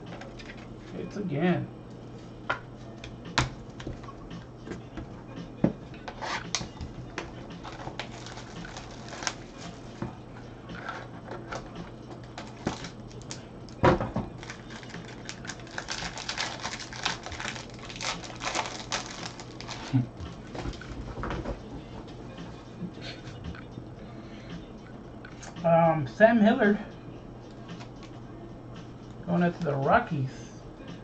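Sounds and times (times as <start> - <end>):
low steady hum: 0.0 - 31.0.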